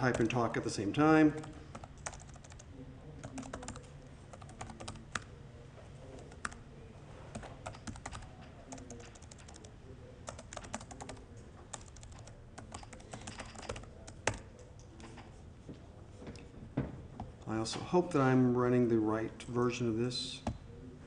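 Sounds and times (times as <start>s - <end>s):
laptop keyboard typing: 0.0s - 0.4s, 1.4s - 5.3s, 6.2s - 6.6s, 7.3s - 14.6s.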